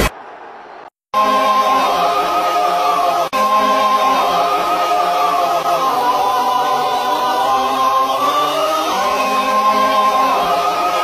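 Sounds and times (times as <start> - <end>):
choir singing held notes: 1.2 - 11.0.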